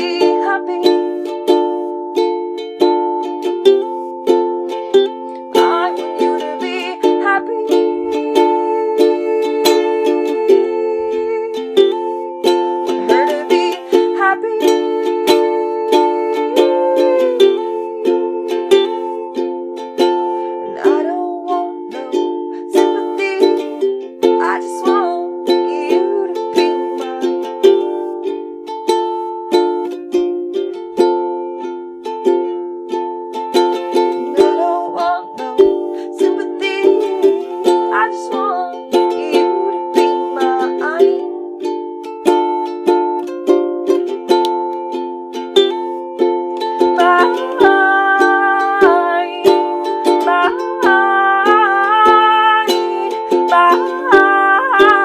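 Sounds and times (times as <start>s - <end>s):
ukulele strumming chords: 0.0s - 55.0s.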